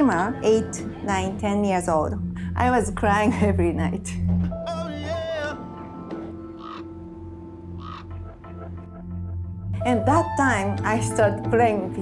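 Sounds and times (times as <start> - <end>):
soft background music: 0.0 - 12.0
crow cawing: 6.3 - 8.8.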